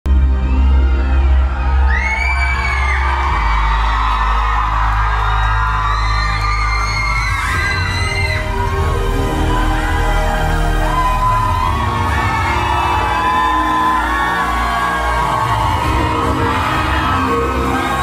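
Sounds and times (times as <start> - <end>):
deep bass chords: 0.0 - 18.0
crowd screaming and whooping: 0.1 - 18.0.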